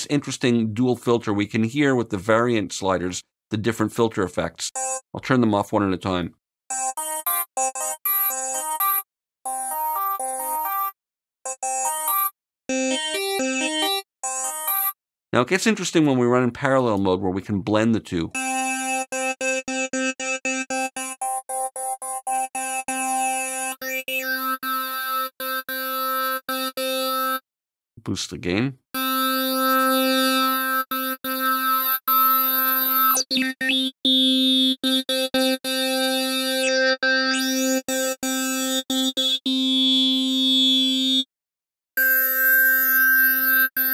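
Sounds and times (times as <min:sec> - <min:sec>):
synthesizer quick stepped notes: 0:29.0 - 0:41.2.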